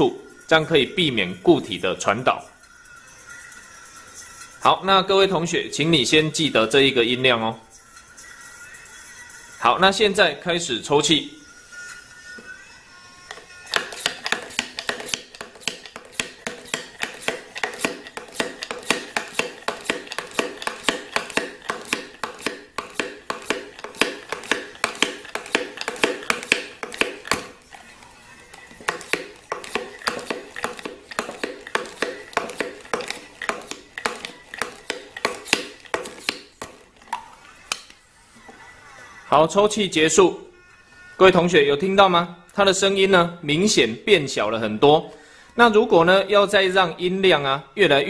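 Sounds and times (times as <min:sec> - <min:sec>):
faint music from a phone: 0:00.0 - 0:48.0
hand vacuum pump clicking: 0:13.7 - 0:27.7, 0:28.8 - 0:36.8.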